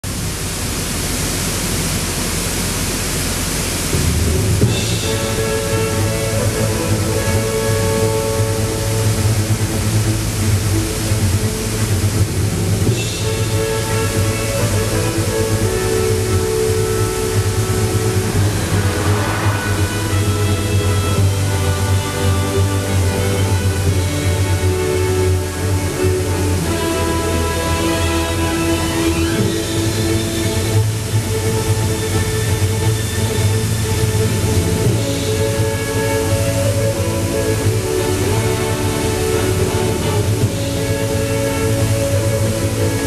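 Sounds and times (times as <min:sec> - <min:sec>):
water rushing over waterfall: 0:00.0 - 0:43.0
slow music with held notes: 0:03.9 - 0:43.0.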